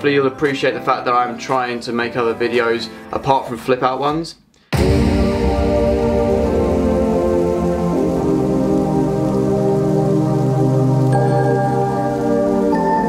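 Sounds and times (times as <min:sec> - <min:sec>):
sustained synth chords: 0:04.8 - 0:13.0.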